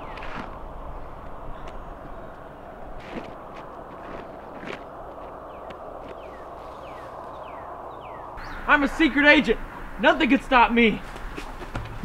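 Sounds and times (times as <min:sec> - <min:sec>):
footsteps on asphalt: 0:01.2 - 0:07.1, 0:11.0 - 0:12.0
outdoor background hiss: 0:05.4 - 0:12.0.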